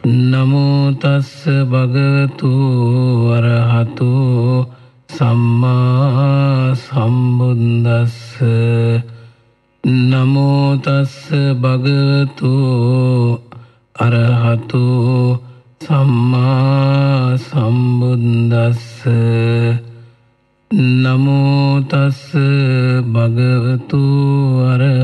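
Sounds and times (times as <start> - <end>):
man chanting: 0.0 - 20.1, 20.7 - 25.0.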